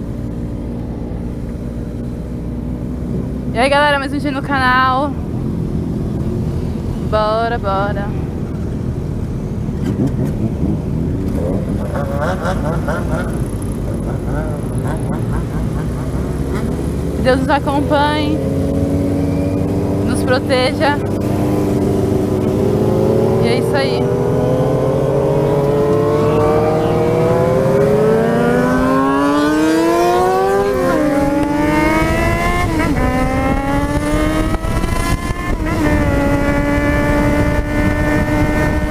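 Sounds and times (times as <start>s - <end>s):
motorcycle engines rumbling: 0.0s - 38.9s.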